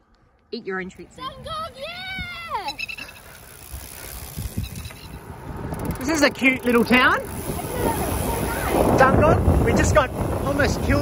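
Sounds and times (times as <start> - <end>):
low wind rumble: 0.0 - 11.0
bike rolling over grass: 1.5 - 11.0.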